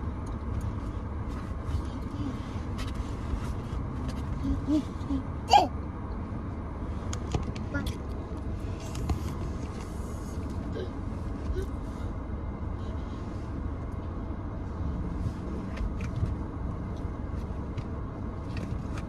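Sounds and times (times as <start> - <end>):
low rumble inside car: 0.0 - 19.0.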